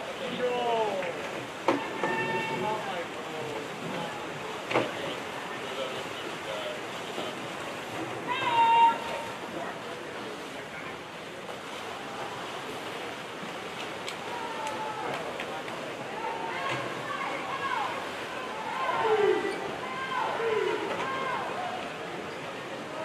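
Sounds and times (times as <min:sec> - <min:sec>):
spectators noise: 0:00.0 - 0:23.0
swimmers splashing: 0:00.0 - 0:23.0
people shouting encouragement: 0:01.7 - 0:02.9, 0:08.3 - 0:09.4, 0:16.1 - 0:21.9.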